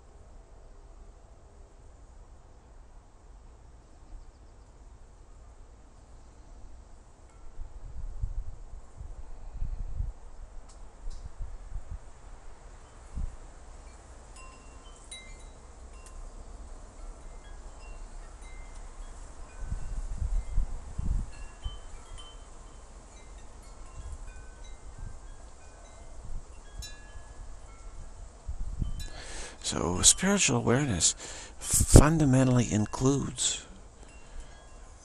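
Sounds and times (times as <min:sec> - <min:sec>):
wind rumbling on microphone: 0:07.4 - 0:13.4, 0:19.3 - 0:30.2, 0:31.6 - 0:32.2
wind chimes ringing: 0:13.9 - 0:16.3, 0:16.9 - 0:20.7, 0:21.3 - 0:28.2, 0:28.8 - 0:35.0.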